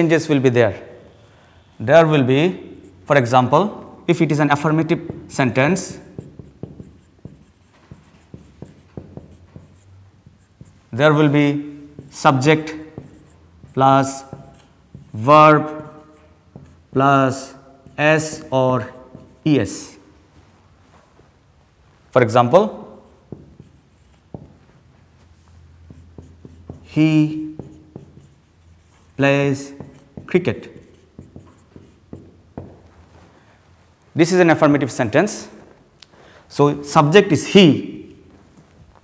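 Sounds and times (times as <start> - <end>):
marker pen on whiteboard: 0.0 - 21.1, 21.8 - 35.8.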